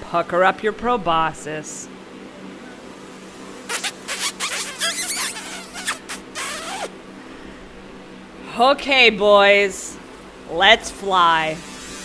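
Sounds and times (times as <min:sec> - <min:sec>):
smacking squeaky kisses: 0:03.7 - 0:06.9.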